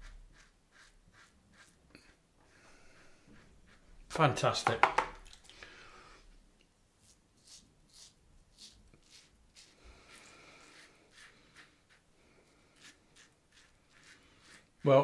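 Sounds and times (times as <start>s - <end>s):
razor scraping stubble: 0.0s - 2.2s, 7.0s - 15.0s.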